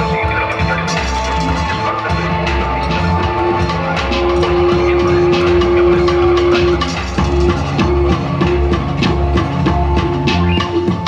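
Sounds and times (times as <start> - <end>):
deep bass: 0.0 - 11.0
electronic hip hop beat: 0.0 - 11.0
synth notes: 0.0 - 11.0.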